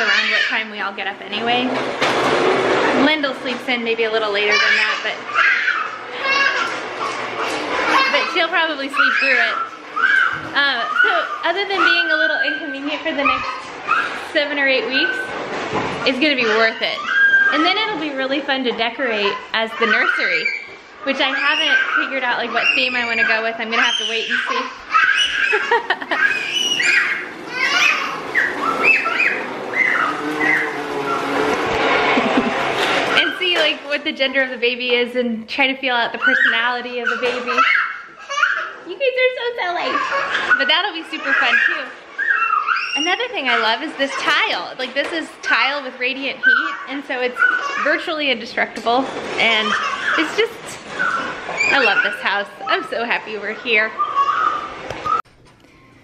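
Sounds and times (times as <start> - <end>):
child squealing and babbling: 0.0 - 0.6, 4.5 - 14.2, 16.4 - 17.7, 19.2 - 31.4, 36.2 - 38.9, 39.8 - 44.4, 46.4 - 48.0, 49.6 - 52.3, 53.9 - 55.2.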